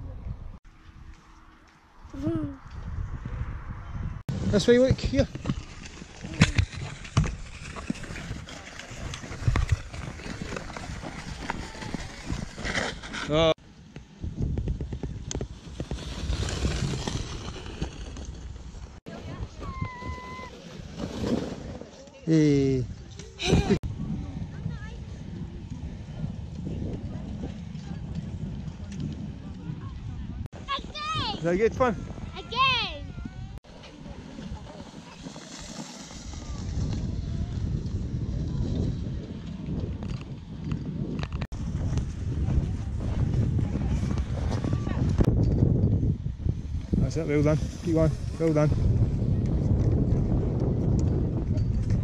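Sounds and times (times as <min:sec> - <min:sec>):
wind buffeting microphone: 0:02.0 - 0:13.1, 0:14.0 - 0:20.9, 0:22.8 - 0:52.0
plastic sled sliding over snow: 0:04.5 - 0:13.6, 0:14.5 - 0:22.4, 0:33.7 - 0:46.0, 0:46.6 - 0:52.0.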